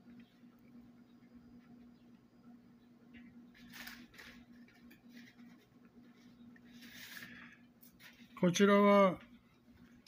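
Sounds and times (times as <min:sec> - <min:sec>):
low steady hum: 0:00.0 - 0:10.0
paper leaflet rustling: 0:03.5 - 0:08.4.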